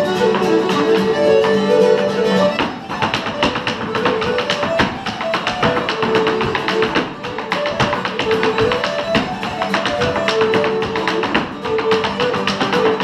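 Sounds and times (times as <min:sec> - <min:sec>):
fiddle and guitar tune: 0:00.0 - 0:13.0
hard shoes tapping on wood: 0:00.2 - 0:13.0.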